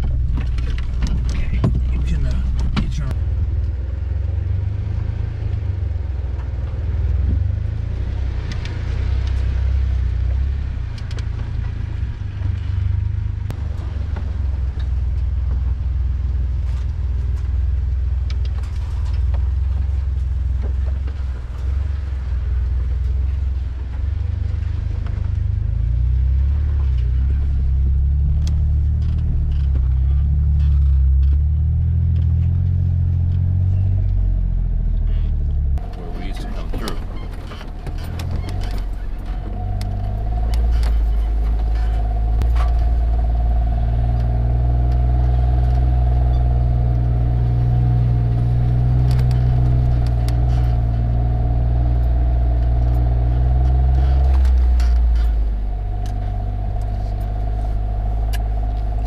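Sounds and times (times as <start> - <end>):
engine and drivetrain drone: 0.0 - 59.0
steady whine: 35.4 - 59.0.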